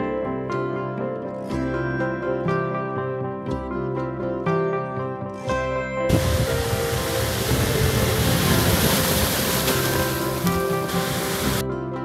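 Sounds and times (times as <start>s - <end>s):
plucked string music: 0.0s - 12.0s.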